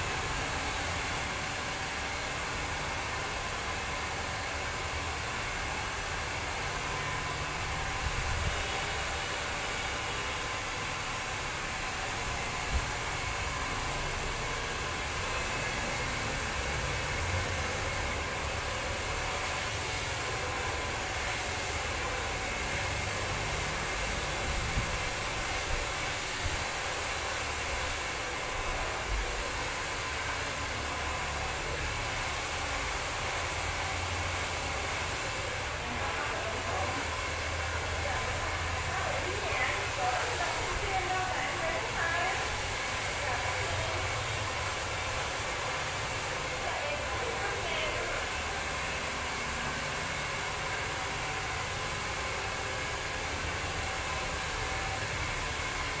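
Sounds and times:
hair dryer blowing: 0.0s - 56.0s.

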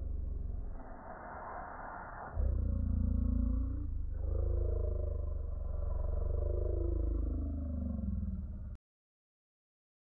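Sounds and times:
deep growl with rumbling flutter: 0.0s - 8.8s.

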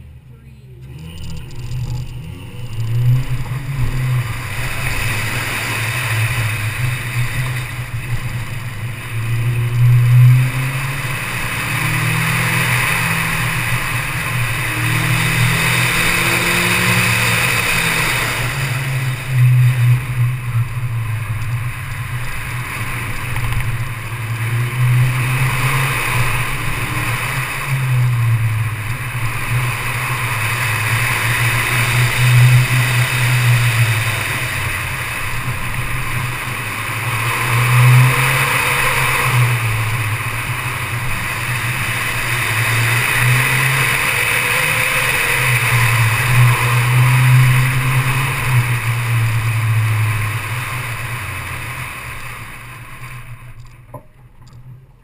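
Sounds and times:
car engine revving: 0.0s - 55.0s
wind and road noise: 0.0s - 55.0s.

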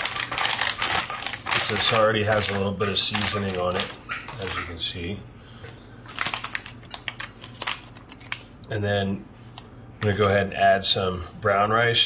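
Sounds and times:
plastic food pouch crinkling: 0.0s - 4.8s, 6.0s - 8.7s
low steady hum: 0.0s - 12.0s.

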